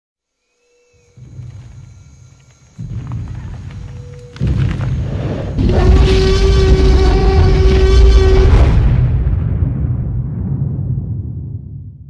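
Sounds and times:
deep rumbling sound effect: 2.8s - 12.0s.

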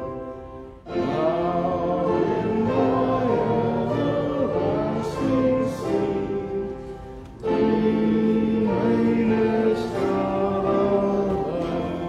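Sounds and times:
instrumental accompaniment: 0.0s - 12.0s
voices singing a hymn: 0.0s - 12.0s.

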